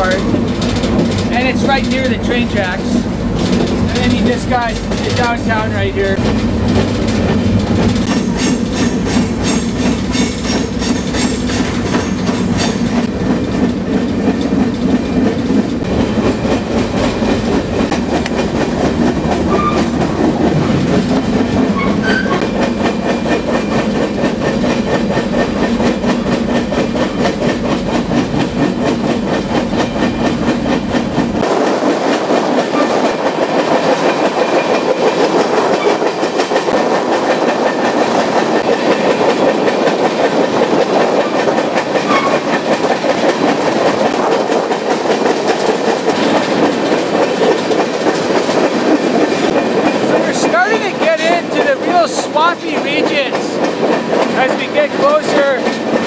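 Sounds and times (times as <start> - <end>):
freight train rumbling and clattering: 0.0 - 56.0.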